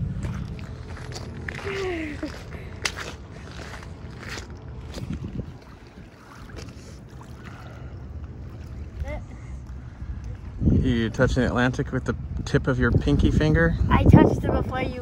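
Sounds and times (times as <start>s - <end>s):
wind on microphone: 0.0s - 2.6s, 3.5s - 6.6s, 9.0s - 15.0s
footsteps crunching on stones: 0.1s - 5.6s.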